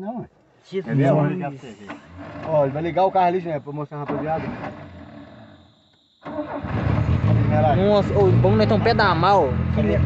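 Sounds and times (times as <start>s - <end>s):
car engine starting and idling: 6.2s - 10.0s.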